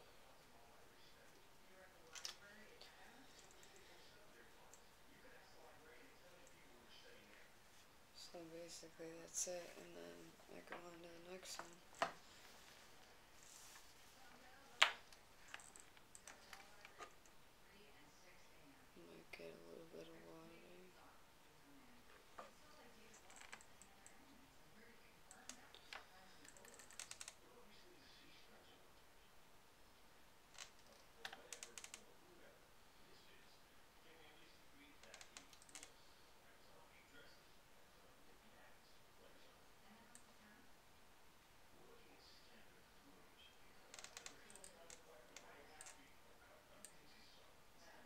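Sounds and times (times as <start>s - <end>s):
faint clicks and taps of painting things: 10.4s - 17.4s, 22.1s - 24.4s, 25.2s - 27.4s, 30.6s - 32.1s, 43.8s - 46.2s.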